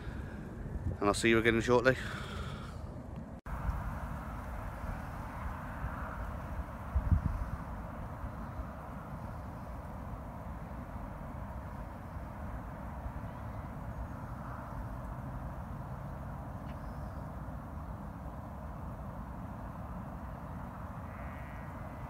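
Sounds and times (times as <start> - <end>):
wind buffeting microphone: 0.0 - 16.2.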